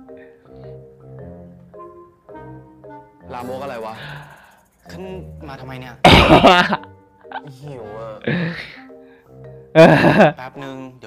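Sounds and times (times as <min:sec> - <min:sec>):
drama dialogue: 0:00.5 - 0:10.8
man laughing loudly: 0:06.0 - 0:07.5, 0:09.8 - 0:10.4.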